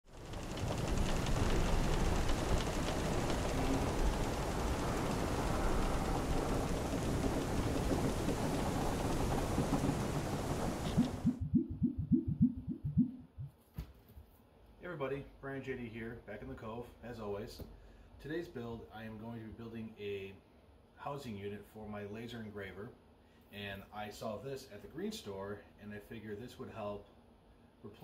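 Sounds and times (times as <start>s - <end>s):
rain: 0.0s - 11.5s
thunder: 0.1s - 12.7s
low pulses: 0.3s - 13.5s.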